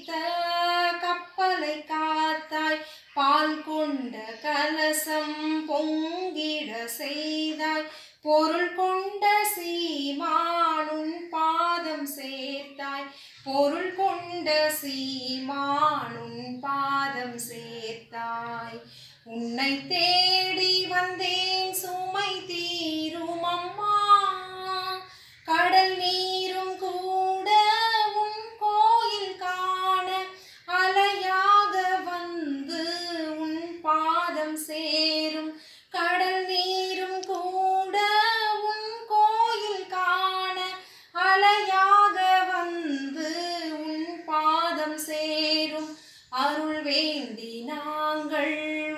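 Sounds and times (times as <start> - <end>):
woman singing a hymn: 0.0 - 48.9.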